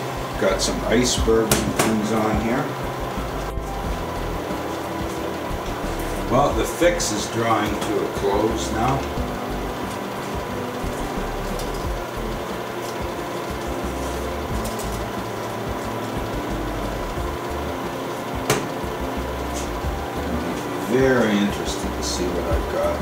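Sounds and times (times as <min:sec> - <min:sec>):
room machinery hum: 0:00.0 - 0:23.0.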